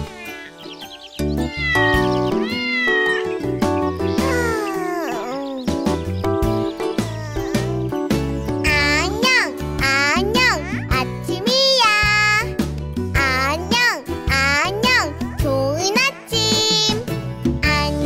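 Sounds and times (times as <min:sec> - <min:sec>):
cartoon kitten meowing: 0:00.0 - 0:00.6, 0:01.5 - 0:05.8, 0:06.8 - 0:08.0
gentle children's music: 0:00.0 - 0:18.0.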